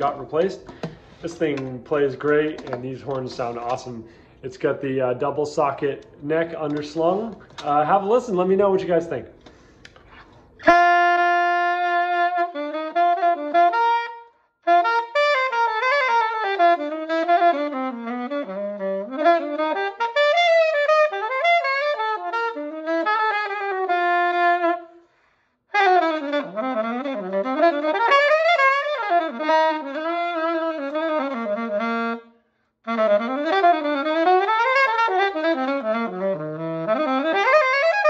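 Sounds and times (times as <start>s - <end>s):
alto saxophone playing solo: 10.6s - 38.0s.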